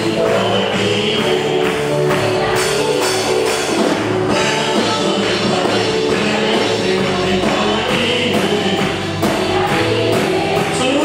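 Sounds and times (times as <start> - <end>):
band with drums: 0.0 - 11.0
group singing worship song: 0.0 - 11.0.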